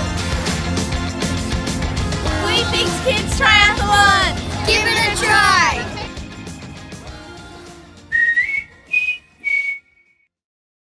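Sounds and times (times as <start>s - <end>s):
background music: 0.0s - 9.6s
whistled jingle notes: 7.5s - 10.2s.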